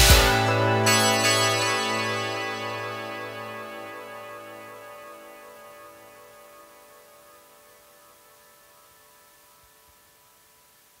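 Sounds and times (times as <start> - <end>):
faint held music tones: 0.0 - 11.0
tape hiss: 0.0 - 11.0.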